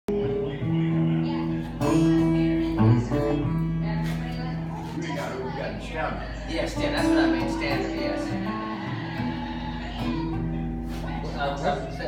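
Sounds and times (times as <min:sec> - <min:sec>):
acoustic guitar: 0:00.1 - 0:12.0.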